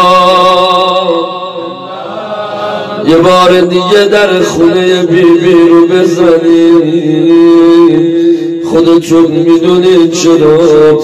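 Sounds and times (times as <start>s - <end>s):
man chanting through a microphone: 0.0s - 11.0s.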